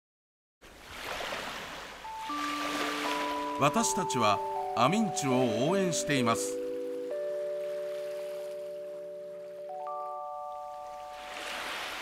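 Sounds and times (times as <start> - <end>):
soft chime jingle: 2.0 - 12.0.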